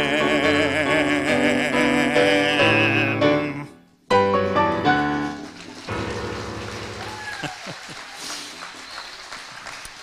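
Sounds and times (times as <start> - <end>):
digital piano chords: 0.0 - 6.9.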